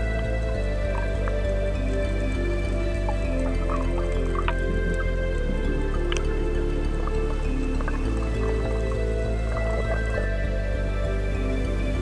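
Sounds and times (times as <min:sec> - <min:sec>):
calm background music: 0:00.0 - 0:12.0.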